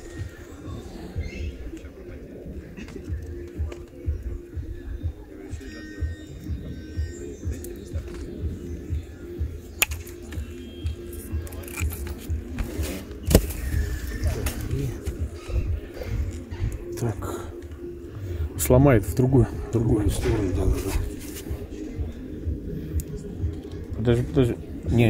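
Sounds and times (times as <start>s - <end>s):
background music: 0.0s - 25.0s
metal snips cutting plastic: 11.5s - 13.5s.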